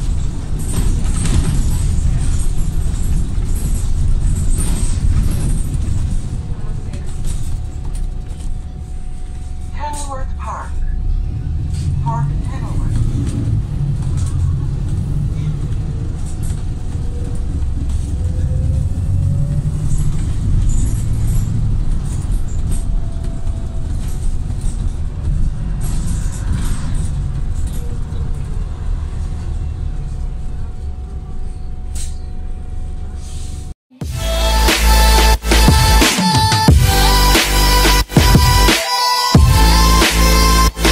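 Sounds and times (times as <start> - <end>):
bus body rattles and clicks: 0.0 - 33.8
bus engine rumble: 0.0 - 40.9.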